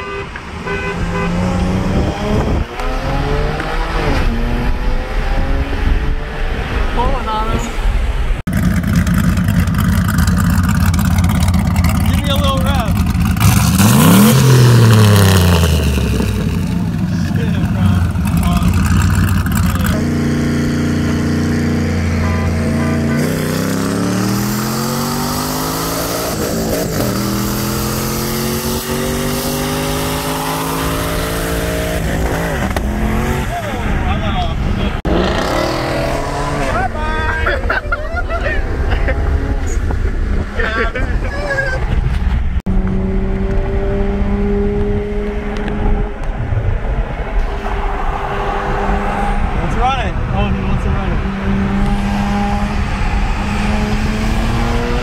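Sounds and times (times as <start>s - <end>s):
car engine at full throttle: 0.0s - 41.0s, 41.6s - 55.0s
road and wind noise: 0.0s - 55.0s
voices: 36.2s - 42.0s.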